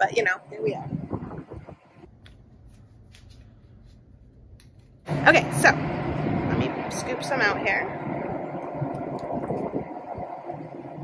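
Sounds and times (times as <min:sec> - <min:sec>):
low rumble: 0:00.7 - 0:02.1, 0:04.5 - 0:11.0.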